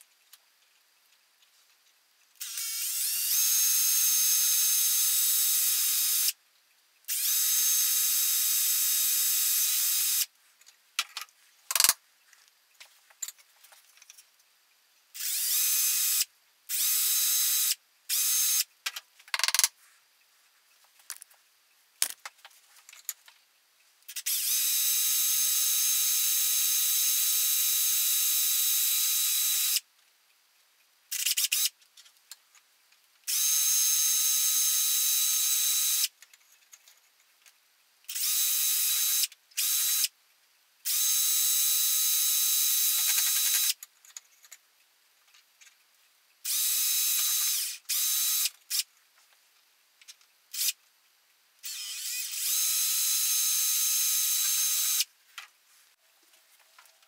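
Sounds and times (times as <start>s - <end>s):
electric drill whining: 2.4s - 6.4s, 7.1s - 10.3s, 15.2s - 18.7s, 24.2s - 29.8s, 46.5s - 48.8s, 51.6s - 55.1s.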